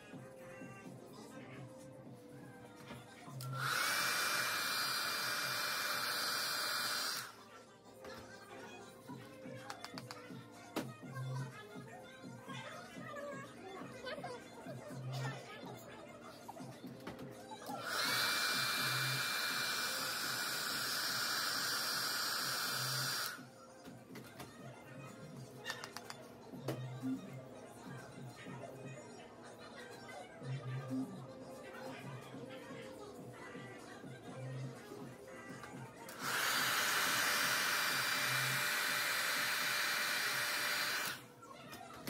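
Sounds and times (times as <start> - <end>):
hair dryer running: 3.4 - 7.4, 17.6 - 23.5, 36.1 - 41.2.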